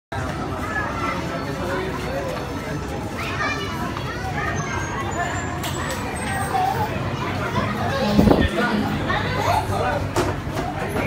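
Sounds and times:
chatter of adults and children: 0.1 - 11.0.

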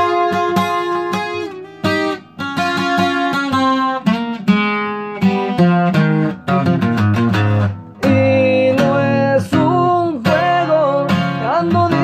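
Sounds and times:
twelve-string acoustic guitar: 0.0 - 12.0
man singing: 8.0 - 12.0.

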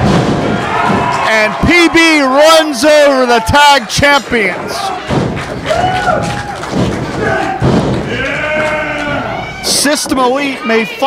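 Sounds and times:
people shouting and yelling: 0.0 - 11.0.

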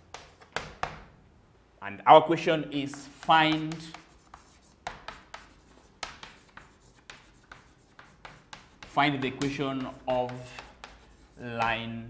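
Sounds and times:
chalk writing on a blackboard: 0.0 - 1.0, 2.8 - 11.8.

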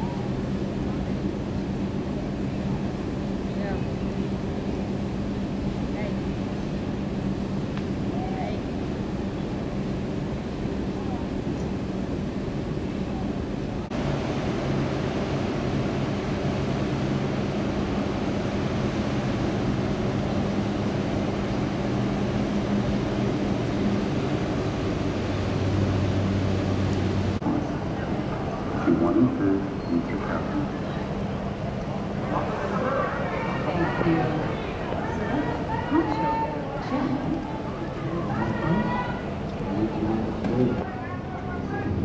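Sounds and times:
faint passenger voices: 0.0 - 4.8, 5.4 - 7.2, 8.0 - 9.6, 10.8 - 11.9, 12.6 - 13.9, 27.0 - 42.0
low machinery hum: 0.0 - 42.0
steady wind: 0.0 - 42.0.

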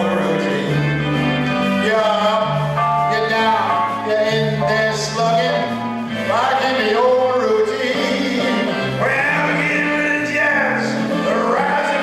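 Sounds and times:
man singing into a microphone: 0.0 - 1.1, 1.8 - 12.0
instrumental accompaniment: 0.0 - 12.0.

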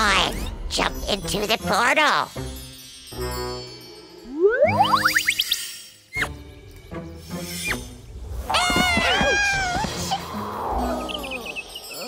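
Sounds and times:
background music: 0.0 - 12.0
sliding cartoon sound effects: 4.3 - 5.6.

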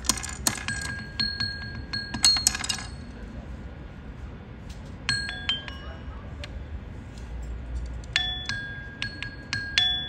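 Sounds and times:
mallets clinking on metal bars: 0.0 - 3.2, 5.1 - 6.1, 7.4 - 10.0
high ringing tones: 5.0 - 6.4, 8.1 - 10.0.

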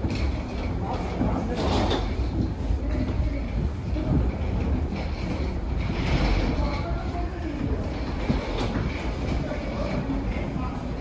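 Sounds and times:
walkway rumbling and rattling: 0.0 - 11.0.

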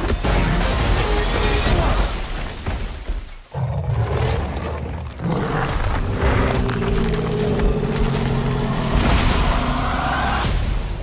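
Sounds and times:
dramatic trailer music: 0.0 - 2.1.

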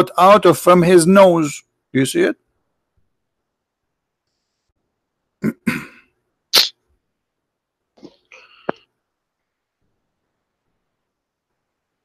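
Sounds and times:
man coughing: 5.4 - 6.1.

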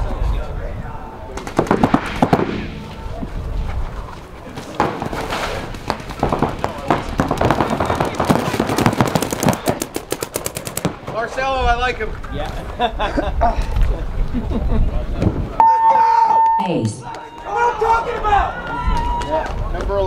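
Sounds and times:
paintball markers firing: 4.8 - 11.2.

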